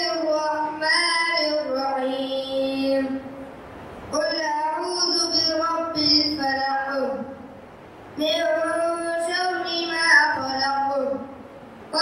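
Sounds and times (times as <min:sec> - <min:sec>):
boy chanting into microphone: 0:00.0 - 0:03.4, 0:04.1 - 0:07.6, 0:08.2 - 0:12.0.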